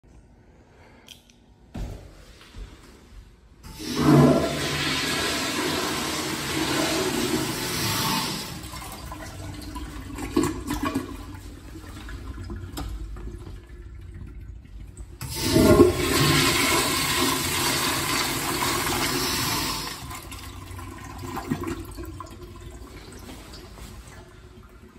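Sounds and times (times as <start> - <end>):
urinal flushing: 3.6 - 24.9
toilet flush valve burst: 3.7 - 22.8
water swirling down toilet bowl: 3.7 - 24.9.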